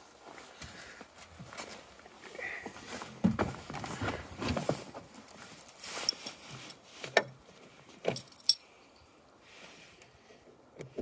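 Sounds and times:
key ring jingling: 8.1s - 8.6s.

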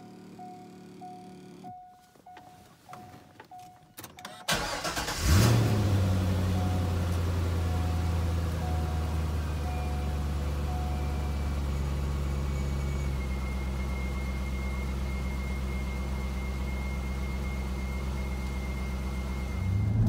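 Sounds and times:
car engine starting and idling: 0.0s - 20.0s.

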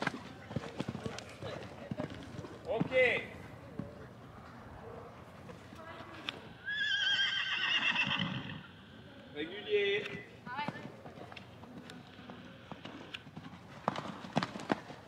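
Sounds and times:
hooves cantering on sand: 0.0s - 6.4s, 9.8s - 15.0s
horse whinnying: 6.6s - 9.0s.

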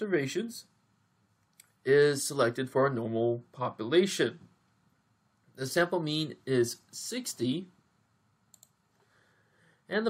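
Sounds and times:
person speaking: 0.0s - 0.8s, 1.6s - 4.5s, 5.5s - 7.8s
faint quick clicks: 8.5s - 8.8s.

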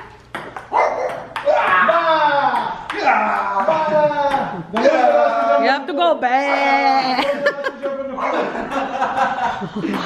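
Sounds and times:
table tennis ball hitting paddles: 0.0s - 5.1s.

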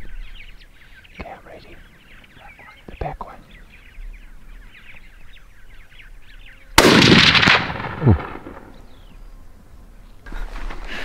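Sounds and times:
rifle shot: 6.8s - 8.9s.

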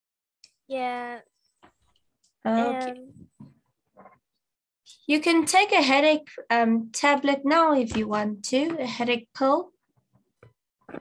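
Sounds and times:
person saying um: 2.5s - 3.2s.

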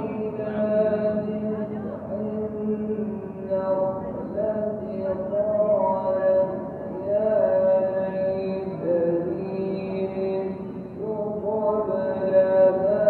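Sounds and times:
person chanting: 0.0s - 13.0s.

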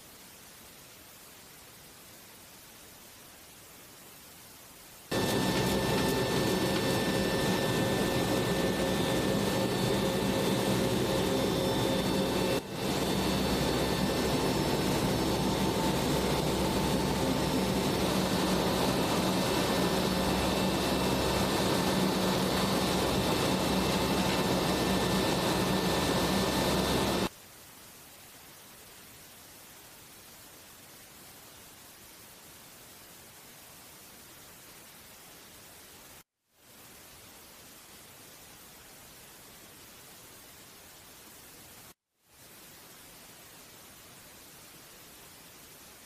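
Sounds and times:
aircraft engine drone with whine: 5.1s - 27.3s.

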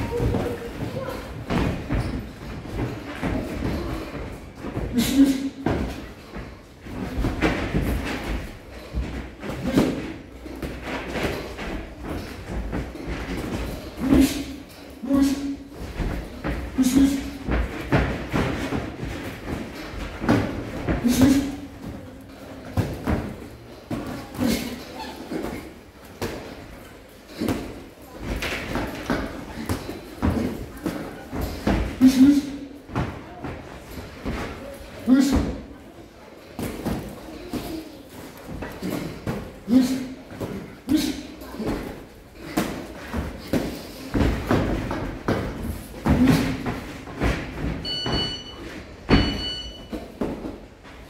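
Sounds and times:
feet on ring canvas: 0.0s - 35.7s, 36.3s - 51.0s
grunts and breaths: 0.0s - 35.8s, 36.5s - 47.8s.

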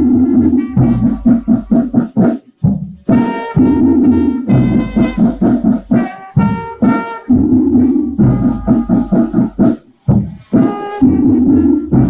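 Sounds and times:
brass band quick repeated notes: 0.0s - 12.0s.

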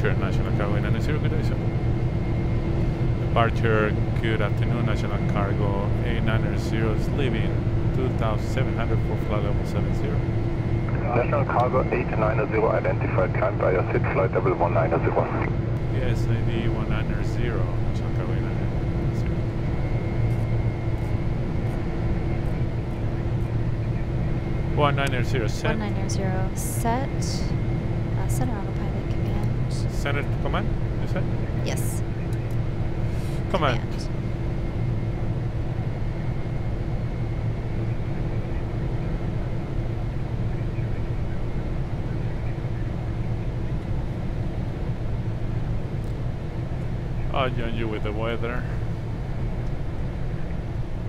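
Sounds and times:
airplane cockpit rumble: 0.0s - 51.0s
steady hum: 0.0s - 51.0s.

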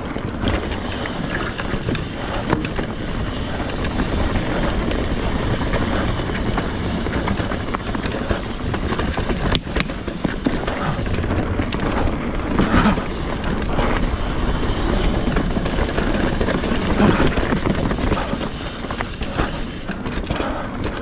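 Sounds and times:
bike clicks and rattles: 0.0s - 21.0s
bike tyres rumbling on dirt: 0.0s - 21.0s.

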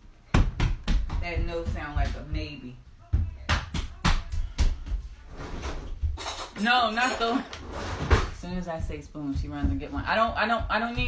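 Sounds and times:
footsteps hurrying on hard floor: 0.3s - 6.3s, 8.1s - 11.0s.

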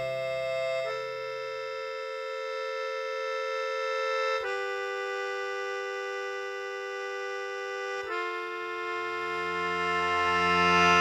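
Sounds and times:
reedy keyboard sustained chord: 0.0s - 11.0s.

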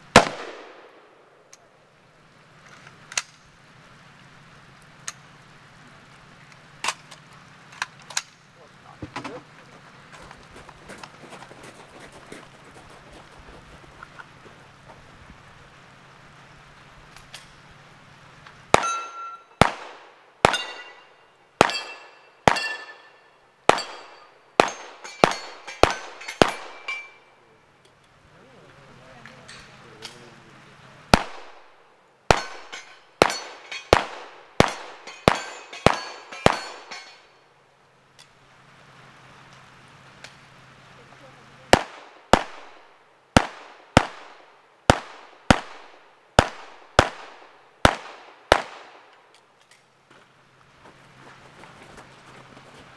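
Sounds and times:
metallic ring of steel targets: 18.8s - 19.6s, 20.4s - 27.4s, 32.3s - 37.4s
rapid gunfire: 31.1s - 31.7s, 32.3s - 36.8s, 41.7s - 49.0s.

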